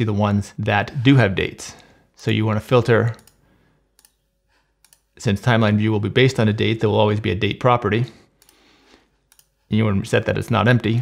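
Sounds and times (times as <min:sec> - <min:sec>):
computer mouse clicks: 0:03.2 - 0:04.2, 0:04.8 - 0:05.2, 0:08.4 - 0:08.6, 0:09.2 - 0:09.6.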